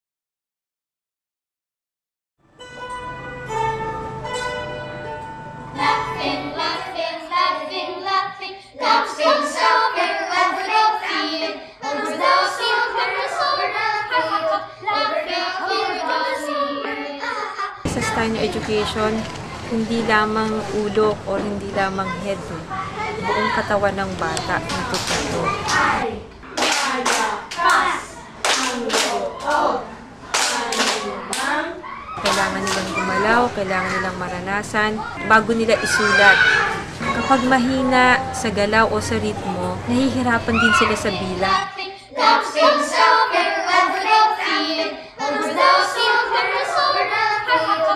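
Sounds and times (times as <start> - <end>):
children singing: 3.2 - 19.7, 24.5 - 47.9
children clapping in rhythm: 24.3 - 33.6.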